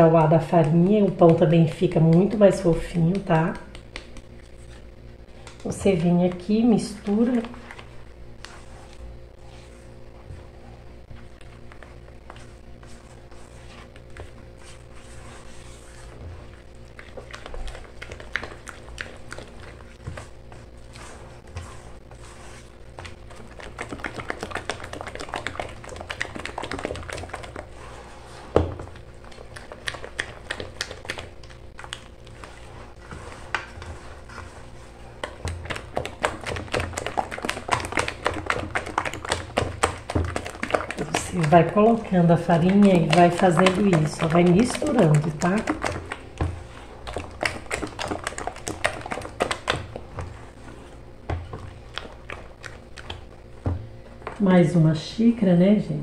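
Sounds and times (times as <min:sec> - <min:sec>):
whisk clicking against metal bowl: 0:35.2 - 0:46.5.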